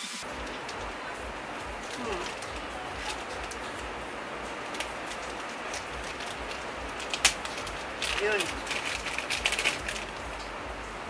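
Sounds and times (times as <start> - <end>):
heavy rain hiss: 0.0 - 11.0
person humming: 2.0 - 2.3
plastic packet crinkling: 4.7 - 10.2.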